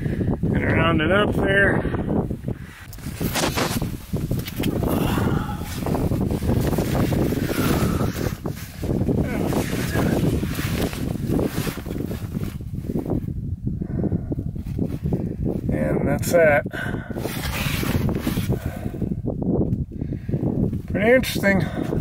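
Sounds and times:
wind buffeting microphone: 0:00.0 - 0:22.0
clothing scraping against rock: 0:02.9 - 0:13.0, 0:17.2 - 0:19.0.

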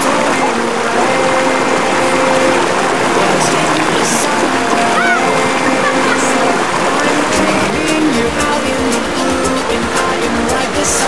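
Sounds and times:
river water rushing over rocks: 0:00.0 - 0:11.0.

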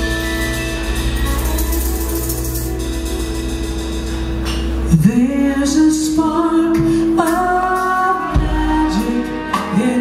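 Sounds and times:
live band playing: 0:00.0 - 0:10.0
low bass: 0:00.0 - 0:10.0.

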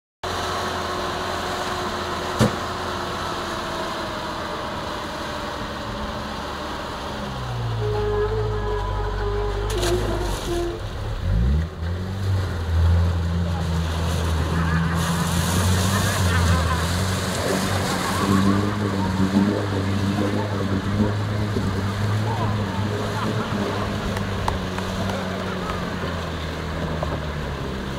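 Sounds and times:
off-road vehicle engine running: 0:00.2 - 0:27.9.

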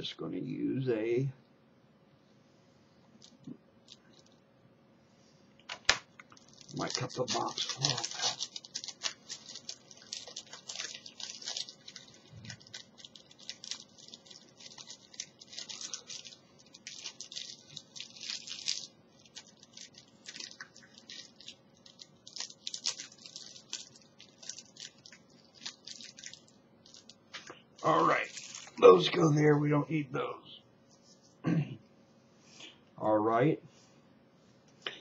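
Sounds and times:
cellophane wrapper crinkling: 0:03.2 - 0:04.4, 0:05.6 - 0:28.8.

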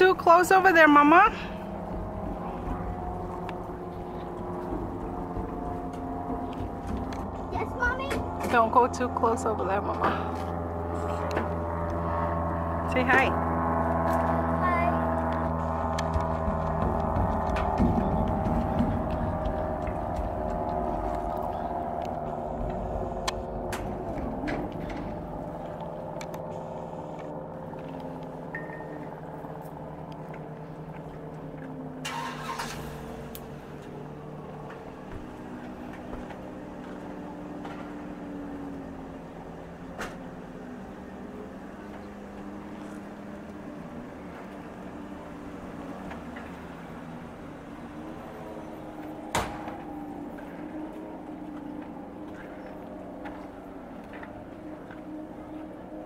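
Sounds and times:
engine drone: 0:00.0 - 0:56.0.

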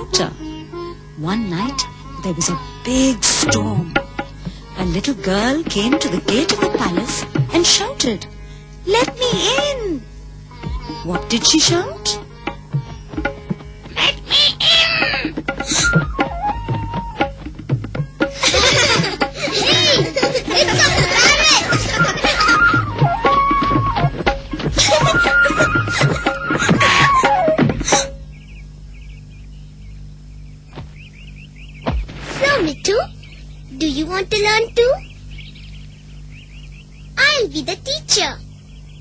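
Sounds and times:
background music: 0:00.0 - 0:28.2
steady low hum: 0:00.0 - 0:39.0
cartoon parrot squawking: 0:14.0 - 0:15.4
bird chirping: 0:28.0 - 0:39.0
sharp knock: 0:31.8 - 0:32.4.

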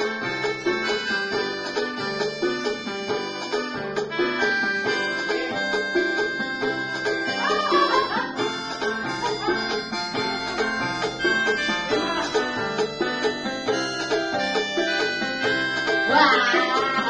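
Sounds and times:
electronic organ melody: 0:00.0 - 0:17.0.

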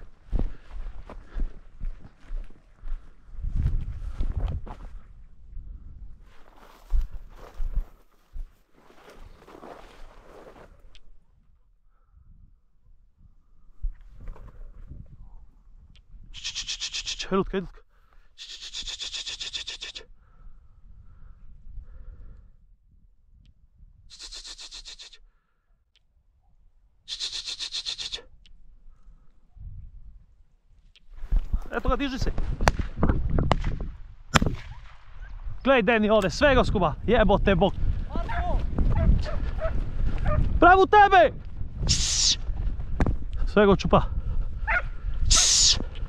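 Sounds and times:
wind rumble on microphone: 0:00.0 - 0:08.6, 0:10.8 - 0:16.4, 0:29.5 - 0:30.5, 0:31.1 - 0:46.0
person making rapid hissing call: 0:16.3 - 0:17.3, 0:18.4 - 0:20.1, 0:24.1 - 0:25.2, 0:27.1 - 0:28.3, 0:41.8 - 0:42.4, 0:45.3 - 0:45.9
hounds baying and yelping: 0:38.9 - 0:40.4, 0:44.6 - 0:44.9.

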